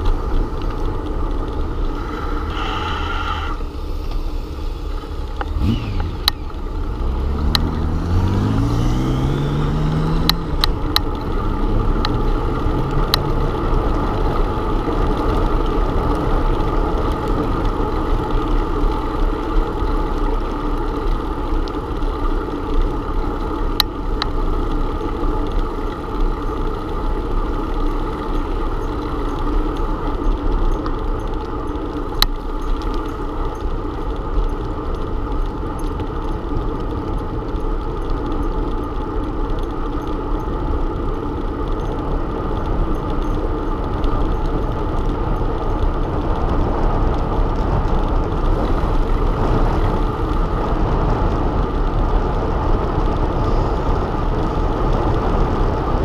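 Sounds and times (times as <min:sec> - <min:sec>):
rising drone: 0:00.0 - 0:14.2
tyres rolling on asphalt: 0:00.0 - 0:56.0
wind rushing over microphone: 0:41.4 - 0:56.0.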